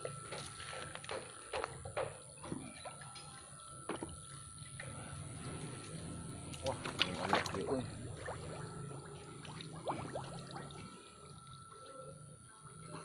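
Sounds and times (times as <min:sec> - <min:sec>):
water trickling and splashing: 0:02.4 - 0:13.0
small water drips: 0:02.8 - 0:13.0.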